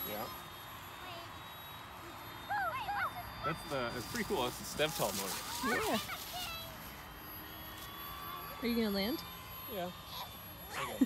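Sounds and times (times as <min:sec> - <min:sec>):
model plane motor whine: 0:00.0 - 0:11.0.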